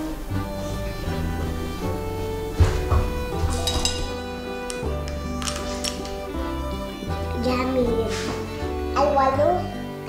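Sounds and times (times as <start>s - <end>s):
background music sustained notes: 0.0s - 10.0s.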